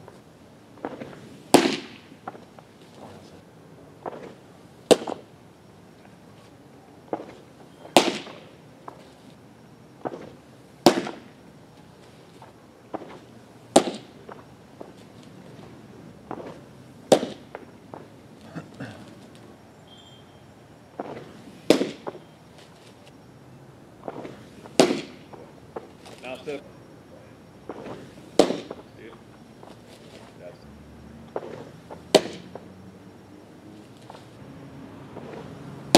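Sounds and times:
baseball smacking into mitt: 0:13.8 - 0:14.1, 0:16.3 - 0:17.5, 0:27.7 - 0:28.8, 0:31.3 - 0:32.6.

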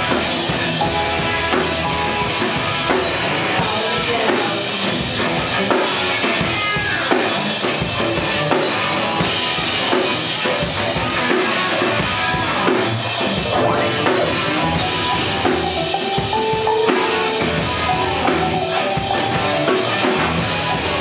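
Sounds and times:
synth keyboards: 0:00.0 - 0:04.4, 0:13.2 - 0:21.0
drum kit: 0:00.0 - 0:21.0
fuzzy electric guitar: 0:00.0 - 0:21.0.

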